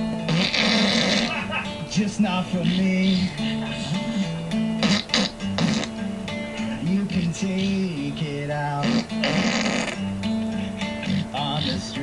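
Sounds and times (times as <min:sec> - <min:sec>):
man farting: 0:00.0 - 0:01.8, 0:04.7 - 0:06.8, 0:08.7 - 0:10.2, 0:10.9 - 0:11.9
acoustic guitar: 0:00.0 - 0:12.0
person singing: 0:01.3 - 0:04.4, 0:06.6 - 0:09.5, 0:11.0 - 0:12.0.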